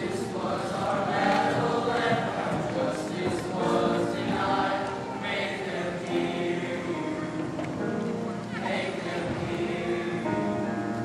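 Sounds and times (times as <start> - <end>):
choir singing sustained notes: 0.0 - 11.0.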